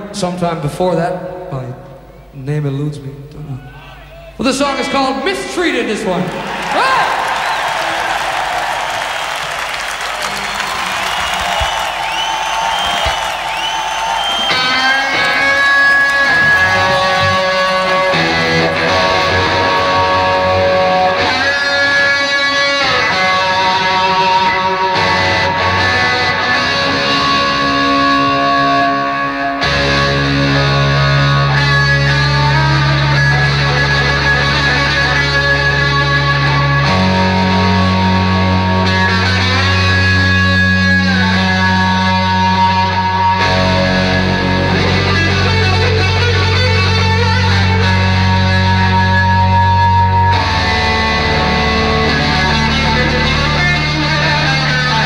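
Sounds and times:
electric guitar lead with bends: 0:14.2 - 0:55.0.

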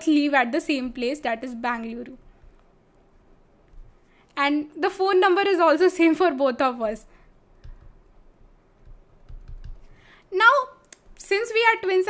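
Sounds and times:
stylus tapping on pen tablet: 0:07.6 - 0:08.1.

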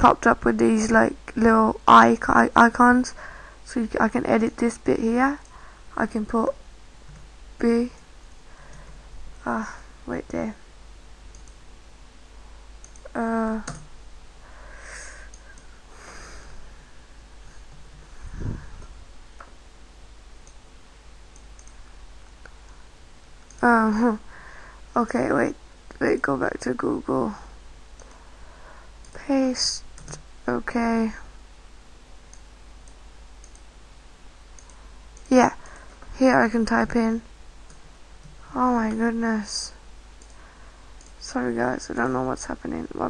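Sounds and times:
low steady hum: 0:00.0 - 0:43.0
faint mouse clicks: 0:11.3 - 0:11.6, 0:12.8 - 0:13.9, 0:21.3 - 0:21.8, 0:28.0 - 0:28.2, 0:32.3 - 0:33.7, 0:34.6 - 0:35.9, 0:40.2 - 0:40.4, 0:41.0 - 0:41.2.

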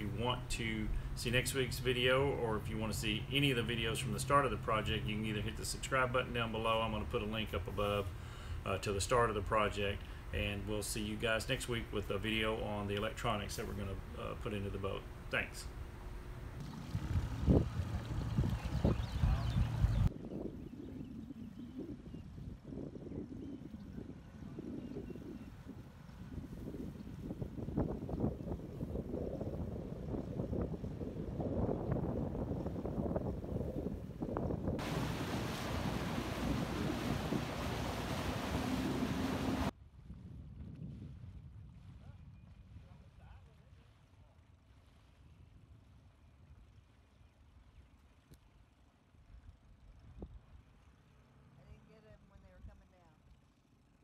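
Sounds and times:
small outboard motor running: 0:15.1 - 0:20.1, 0:34.8 - 0:39.7
wind noise on microphone: 0:16.6 - 0:43.6.

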